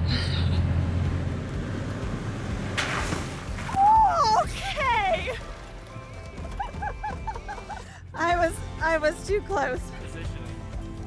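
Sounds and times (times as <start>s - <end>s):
pickup truck rumbling: 0.0s - 4.8s
tyres splashing through puddle: 0.9s - 7.0s.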